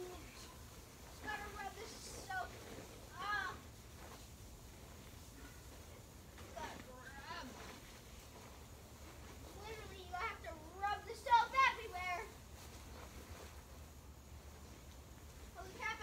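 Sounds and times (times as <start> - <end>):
young child's voice: 0.0 - 0.6, 1.2 - 3.7, 9.5 - 12.4, 15.6 - 16.0
faint low hum: 0.0 - 16.0.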